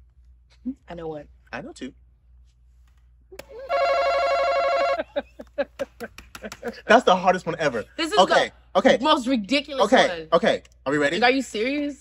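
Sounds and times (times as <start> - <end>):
electronic game-show buzzer: 3.7 - 5.0.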